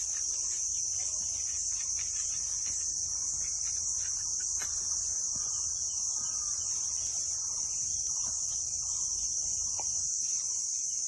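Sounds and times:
insect chorus buzzing: 0.0 - 11.0.

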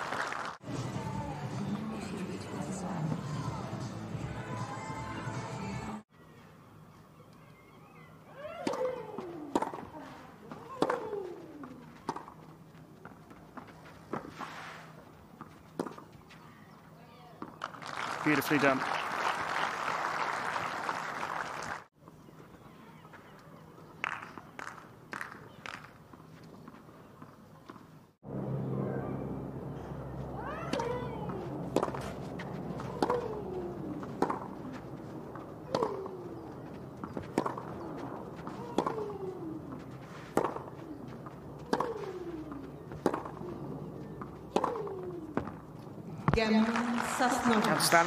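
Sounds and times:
crowd applause: 0.0 - 0.6, 17.6 - 21.9, 46.4 - 48.0
tennis ball bounces: 8.4 - 14.4, 15.3 - 16.4, 30.2 - 48.0
racket striking ball: 8.6 - 12.4, 29.7 - 46.4.

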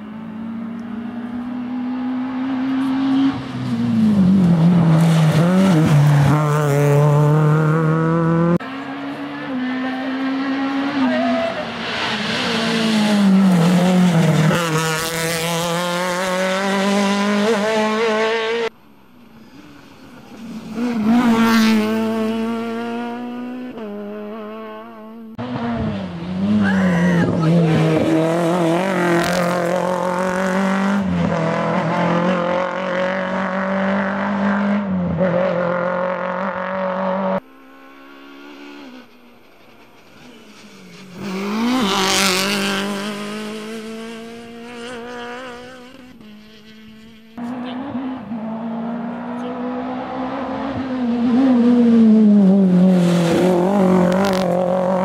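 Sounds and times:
rally car engines revving past: 0.0 - 55.0.

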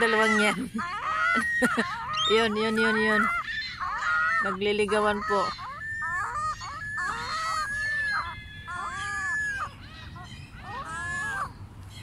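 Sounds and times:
gulls calling: 0.0 - 12.0.

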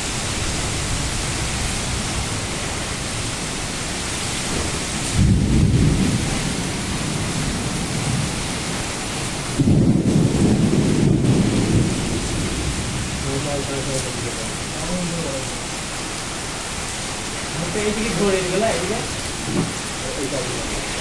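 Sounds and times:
heavy rain hissing: 0.0 - 21.0
strong wind: 0.0 - 21.0.

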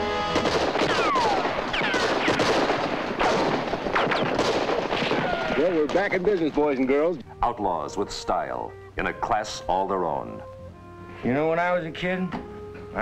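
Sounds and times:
rapid gunfire: 0.3 - 6.0.

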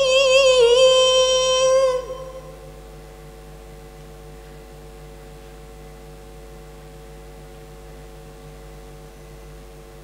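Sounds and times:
person reciting: 0.0 - 2.7
electrical hum and hiss: 0.0 - 10.0.

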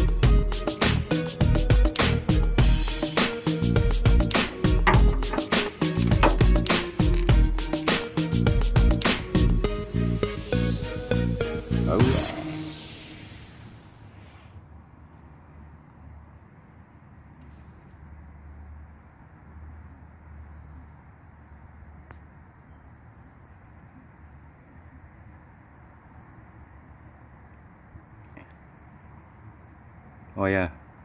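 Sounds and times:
music track: 0.0 - 13.4
high-pitched pulsing trill: 2.7 - 13.6.

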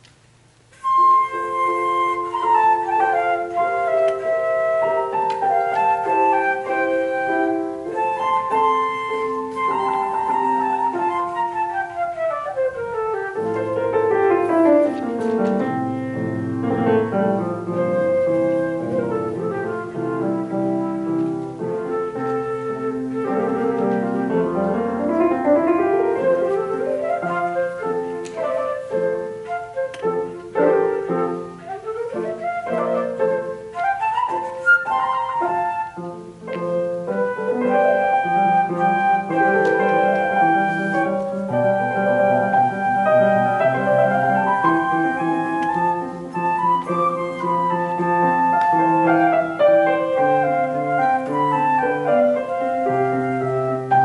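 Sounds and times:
piano accompaniment: 0.0 - 54.0
flute melody: 0.7 - 54.0.

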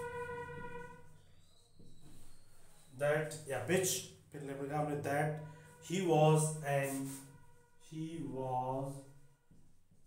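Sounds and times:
whiteboard marker squeaking: 0.0 - 3.8.

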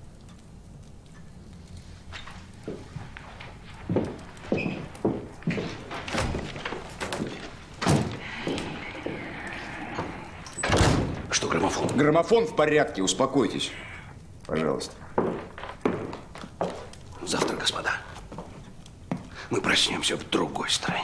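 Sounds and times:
footsteps: 1.7 - 12.3, 14.8 - 19.4
door opening and shutting: 5.9 - 12.0.

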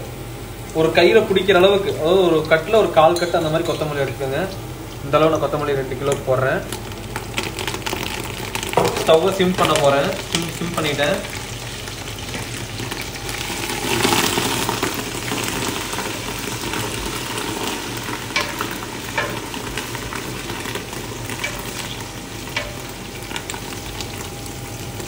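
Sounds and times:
onions sizzling in oil: 0.0 - 25.0.

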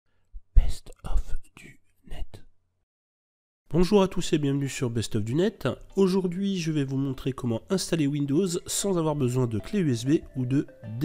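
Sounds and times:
person whispering: 0.5 - 2.5.

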